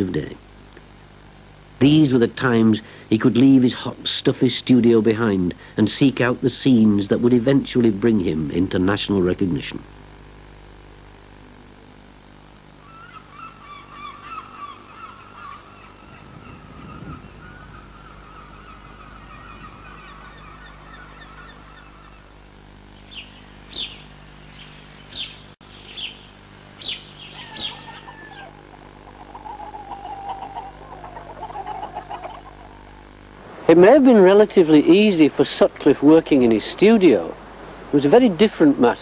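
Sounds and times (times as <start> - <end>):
faint steady hum: 0.0 - 39.0
birds wavering calls: 12.8 - 39.0.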